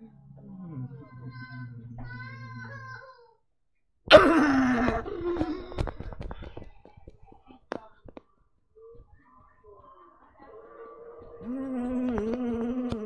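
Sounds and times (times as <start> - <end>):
soft humming tones: 0.0 - 3.0.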